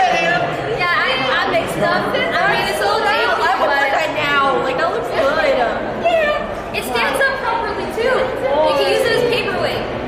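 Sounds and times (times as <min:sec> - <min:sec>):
women talking and exclaiming: 0:00.0 - 0:10.0.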